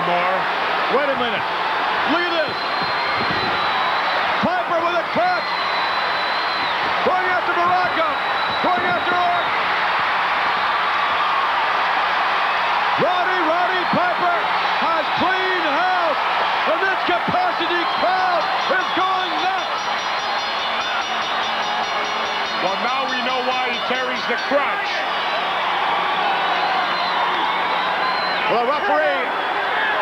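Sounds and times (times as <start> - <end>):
crowd yelling and cheering: 0.0 - 30.0.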